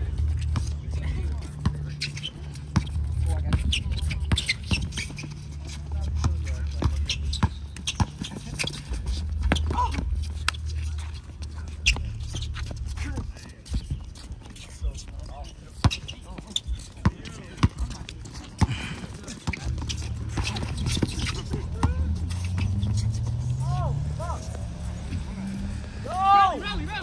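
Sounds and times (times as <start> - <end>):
players' voices: 0.0 - 27.0
short high squeaks: 1.9 - 3.0, 3.6 - 5.8
basketball bouncing on asphalt: 6.2 - 10.2, 16.9 - 23.0.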